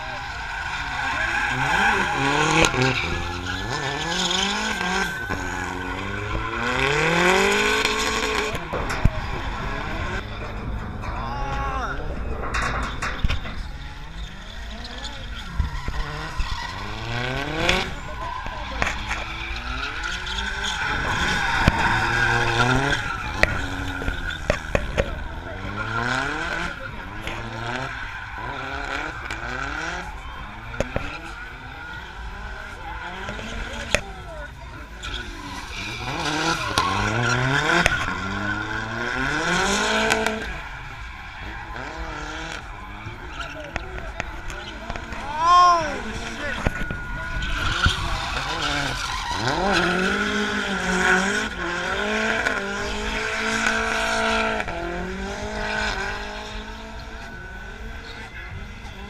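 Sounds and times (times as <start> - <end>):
car engine revving: 0.0 - 59.0
tyres squealing: 0.0 - 59.0.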